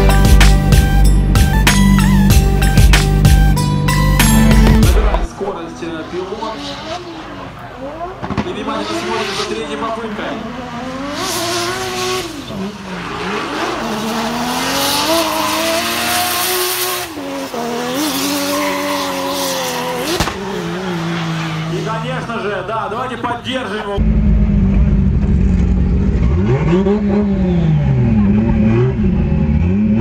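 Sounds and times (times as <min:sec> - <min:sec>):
car engine revving: 0:00.0 - 0:30.0
tyres squealing: 0:15.0 - 0:23.8.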